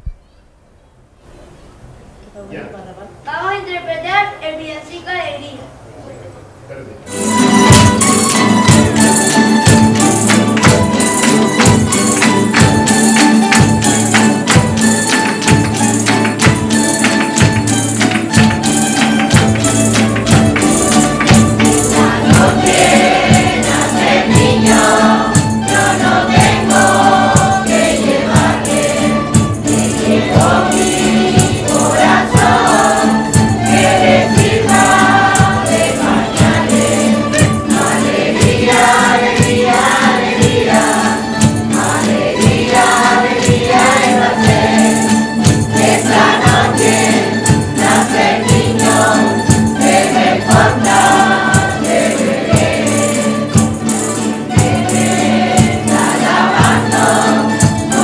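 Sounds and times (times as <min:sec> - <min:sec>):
strummed acoustic guitars and lutes: 0:07.0 - 0:58.0
choir singing a carol: 0:07.1 - 0:58.0
tambourine shaking: 0:07.2 - 0:58.0.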